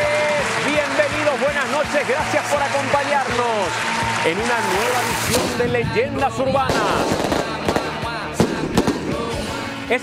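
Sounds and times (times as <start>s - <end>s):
music: 0.0s - 10.0s
firecracker bangs: 5.2s - 6.0s, 6.6s - 9.6s.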